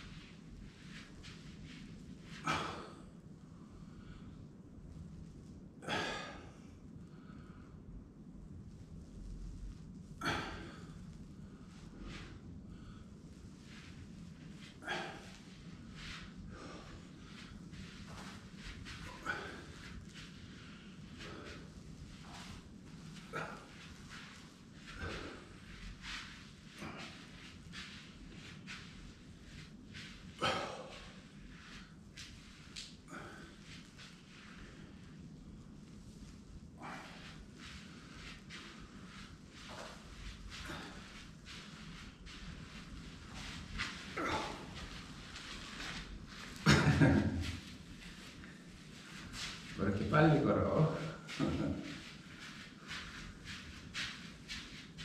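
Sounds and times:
low hum: 0.0s - 55.0s
person breathing slowly: 10.2s - 46.6s.

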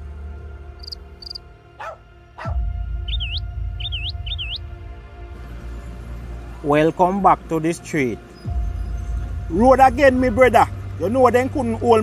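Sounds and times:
faint high chirps: 0.8s - 1.4s, 3.1s - 4.6s
dog barking: 1.8s - 2.6s.

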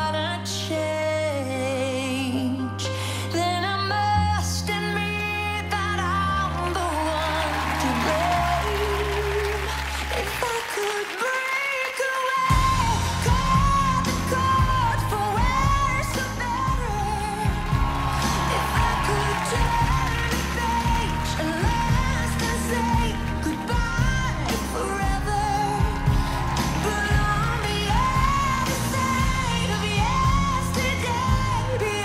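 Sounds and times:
live pop band with piano: 0.0s - 32.0s
woman singing lead vocal: 0.0s - 32.0s.

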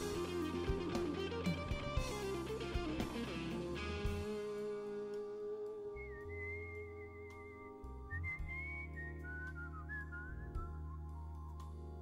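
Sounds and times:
person whistling a melody: 5.2s - 11.9s.

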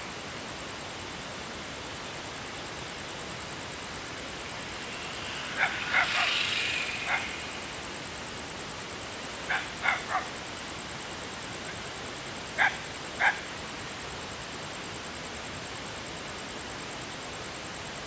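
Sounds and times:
steady hiss: 0.0s - 18.0s
dog barking: 12.6s - 13.4s.

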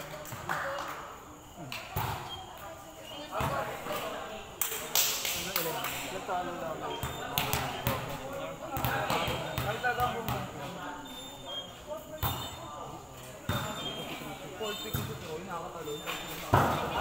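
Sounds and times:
players talking and calling out: 0.0s - 17.0s
volleyball thuds: 1.7s - 2.5s, 6.9s - 10.7s, 13.4s - 15.4s, 16.0s - 17.0s.

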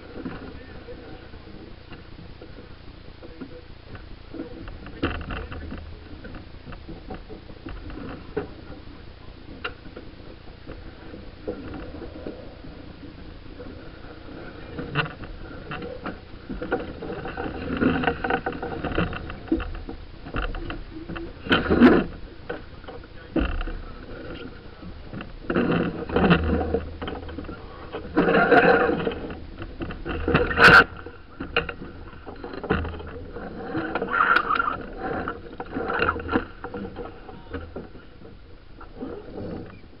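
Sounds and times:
low rumble of boat moving: 0.0s - 40.0s
wind: 0.0s - 40.0s
deck gear knocking and rattling: 0.1s - 40.0s.

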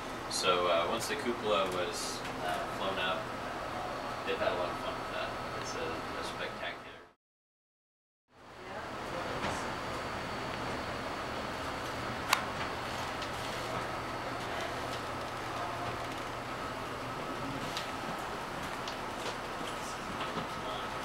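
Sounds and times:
air-handling hum: 0.0s - 7.1s, 8.4s - 21.0s.

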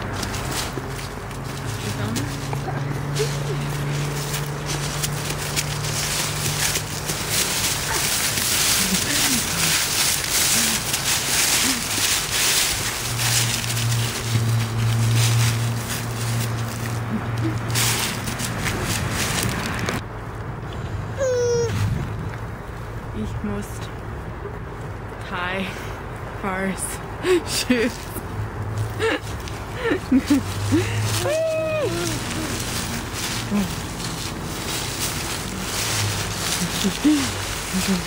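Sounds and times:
dry leaves crunching underfoot: 0.0s - 20.0s, 27.8s - 38.0s.

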